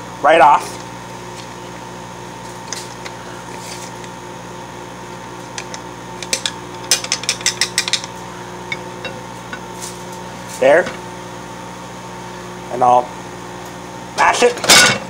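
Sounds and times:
microwave oven humming: 0.0s - 15.0s.

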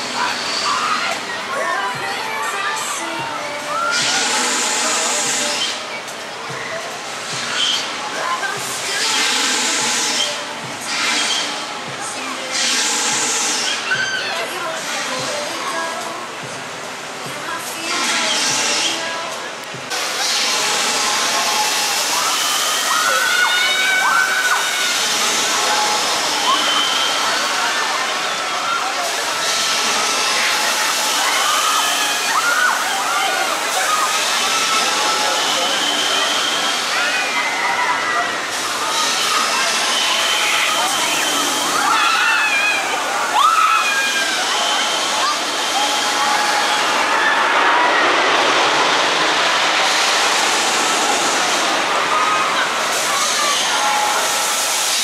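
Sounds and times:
steady rushing hiss: 0.0s - 55.0s
voices: 0.0s - 55.0s
riders screaming: 21.2s - 27.6s, 28.6s - 54.6s.

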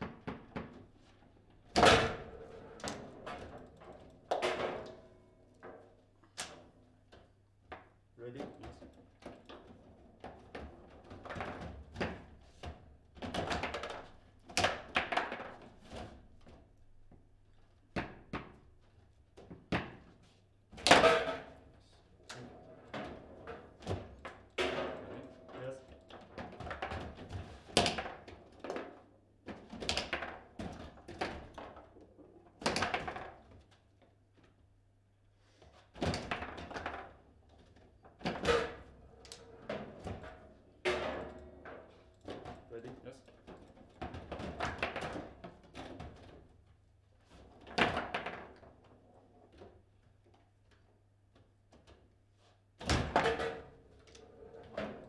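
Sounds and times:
foosball knocks and thunks: 1.7s - 5.8s, 8.5s - 16.2s, 20.8s - 21.7s, 22.4s - 33.6s, 36.0s - 42.7s, 43.4s - 46.5s, 47.6s - 49.8s, 52.8s - 55.0s.

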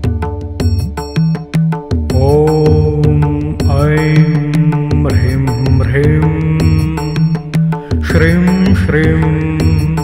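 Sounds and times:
person chanting: 2.1s - 10.0s.

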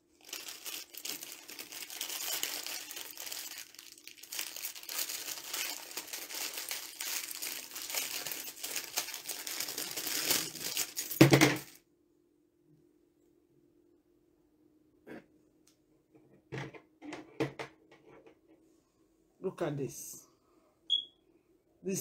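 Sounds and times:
plastic packets crinkling: 0.0s - 11.8s.

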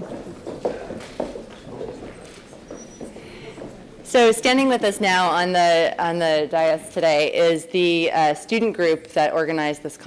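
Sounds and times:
faint footsteps on hard floor: 0.0s - 4.2s.

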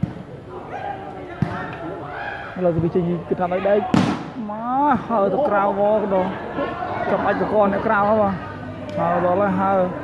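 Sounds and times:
men talking: 0.4s - 10.0s.

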